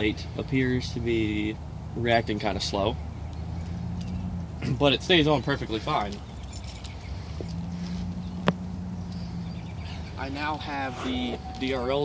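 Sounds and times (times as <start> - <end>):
footsteps on pavement: 6.1 - 12.0.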